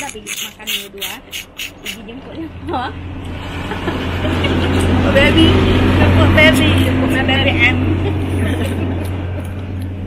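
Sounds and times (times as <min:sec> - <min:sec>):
person slurping snail: 0:00.0 - 0:02.0.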